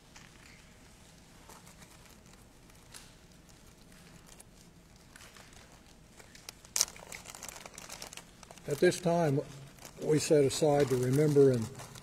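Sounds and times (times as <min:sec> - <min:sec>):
paper rustling and crinkling: 0:00.1 - 0:12.0
man speaking: 0:08.7 - 0:11.8.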